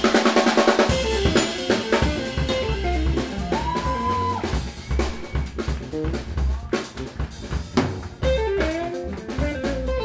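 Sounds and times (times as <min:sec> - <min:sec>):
bass: 0:00.0 - 0:10.0
drum kit: 0:00.0 - 0:10.0.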